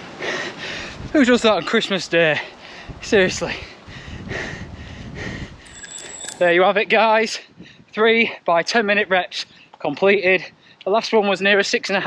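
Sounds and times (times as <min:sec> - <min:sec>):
runner breathing hard: 0:00.0 - 0:01.1, 0:02.4 - 0:03.0, 0:03.6 - 0:06.2.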